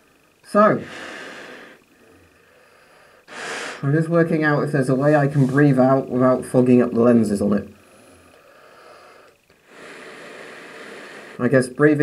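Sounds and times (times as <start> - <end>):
breathing through gas mask: 0.8 - 3.9, 7.8 - 11.4.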